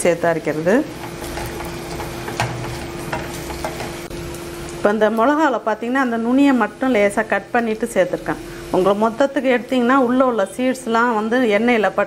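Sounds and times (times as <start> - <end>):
food sizzling in oil: 0.0 - 12.0
spatula scraping a pan: 0.9 - 4.1.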